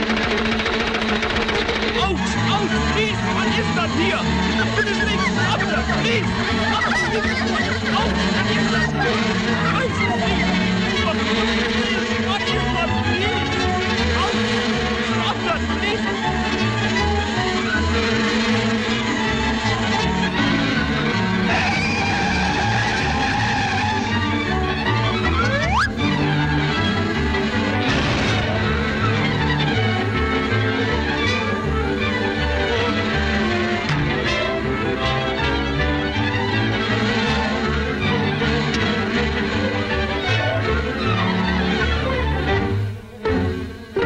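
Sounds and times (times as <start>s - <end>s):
background score low notes: 0.0s - 44.0s
orchestral music: 1.7s - 44.0s.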